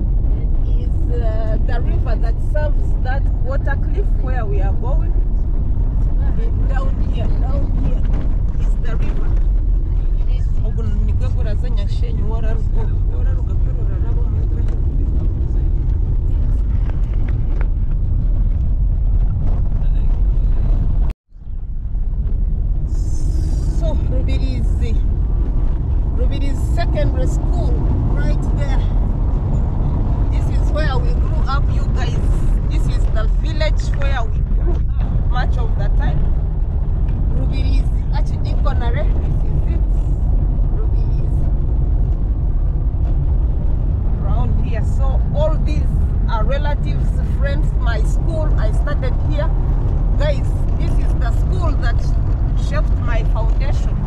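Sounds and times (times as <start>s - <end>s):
car rumbling on dirt road: 0.0s - 54.0s
voices talking: 30.2s - 36.3s.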